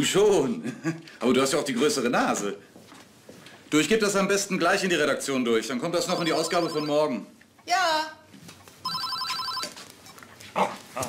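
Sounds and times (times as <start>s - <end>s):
telephone ringing: 6.0s - 7.2s, 8.8s - 9.8s.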